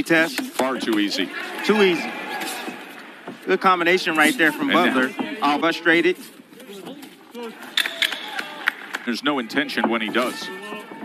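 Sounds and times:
boxing arena ambience: 0.0 - 11.0
man commentating: 3.4 - 6.2, 9.0 - 11.0.

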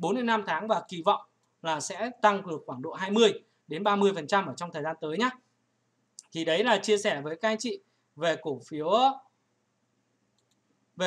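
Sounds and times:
man speaking: 0.0 - 5.4, 6.2 - 9.2
faint clicks: 1.4 - 1.6, 6.1 - 6.4, 10.3 - 10.7.

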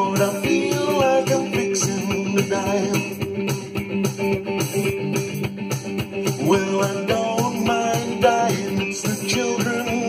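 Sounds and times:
person singing: 0.0 - 3.4, 6.2 - 10.0
electric guitar blues riff: 0.0 - 10.0
steady beat: 0.0 - 10.0.

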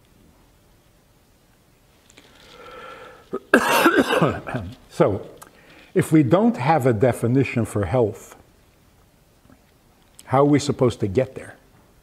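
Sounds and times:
man clearing throat: 3.4 - 4.8
man coughing: 3.4 - 4.8.

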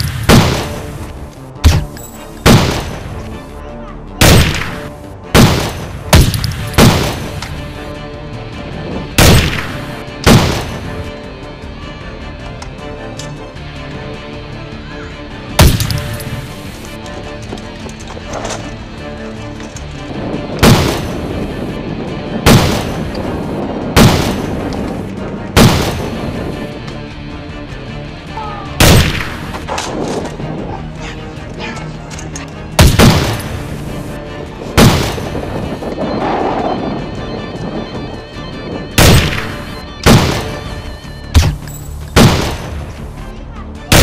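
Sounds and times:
gunshot sound effect: 0.0 - 0.8, 4.2 - 7.4
gunshots: 0.0 - 3.2, 4.2 - 7.6, 9.2 - 11.0, 15.6 - 16.3, 20.6 - 21.2, 22.4 - 23.2, 24.0 - 24.7, 25.6 - 26.3, 28.8 - 30.2, 32.8 - 33.9, 34.8 - 35.5, 39.0 - 40.8, 41.4 - 41.6, 42.2 - 43.0
background music: 0.0 - 44.0.

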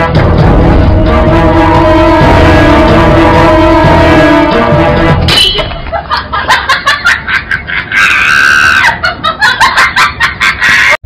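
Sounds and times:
high-pitched screaming: 7.9 - 9.0.

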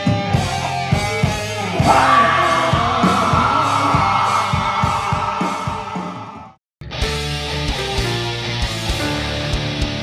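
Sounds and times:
drums: 0.0 - 10.0
electric guitars: 0.0 - 10.0.

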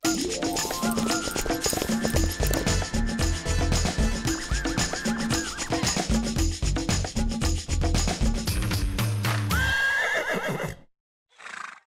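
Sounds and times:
music: 0.0 - 9.7
horse whinnying: 4.0 - 5.9, 9.5 - 11.8.

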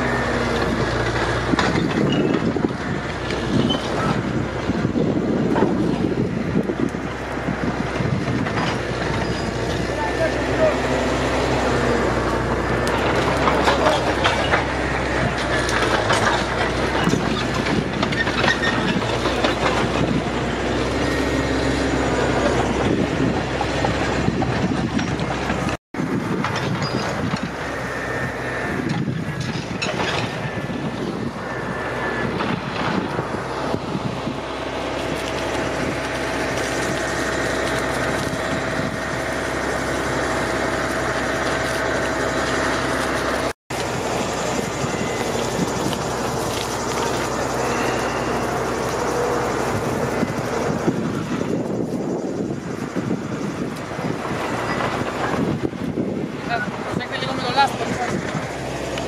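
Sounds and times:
fire crackling and rushing: 0.0 - 59.0.

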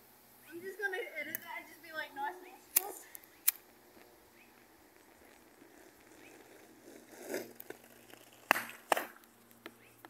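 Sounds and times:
skateboard scraping: 4.0 - 9.2
skateboard clacking on asphalt: 4.0 - 9.8.

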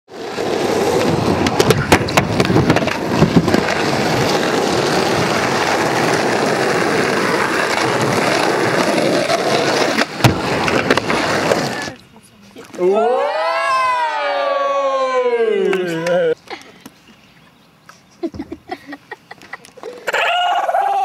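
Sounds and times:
skateboard wheels rolling on asphalt: 0.1 - 12.2
skateboard clacks: 0.3 - 11.9.

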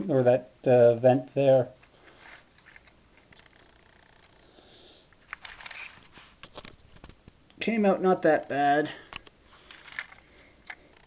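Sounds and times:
plastic handling noise: 1.8 - 4.3, 5.2 - 7.4, 9.1 - 11.0.

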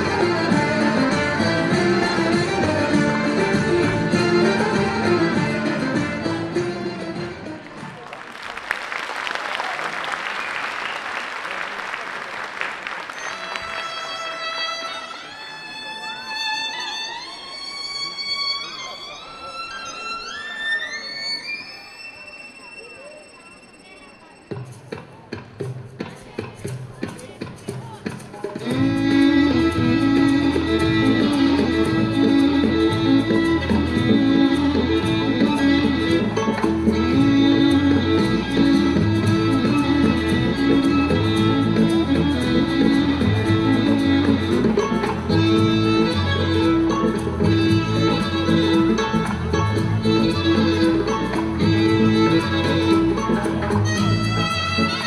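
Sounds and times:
slow solo violin melody: 0.0 - 7.2, 13.3 - 22.2, 28.6 - 55.0
applause: 7.6 - 14.6.

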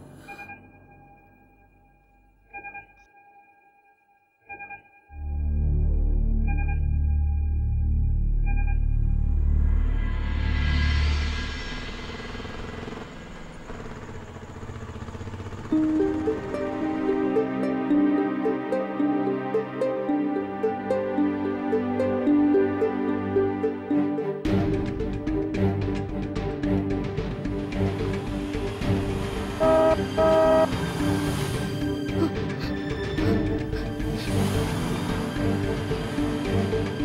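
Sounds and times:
deep musical drone: 5.2 - 37.0
motorcycle engine running: 11.8 - 17.5, 27.6 - 31.2
soft background music: 15.7 - 37.0
car horn honking: 29.6 - 30.8.

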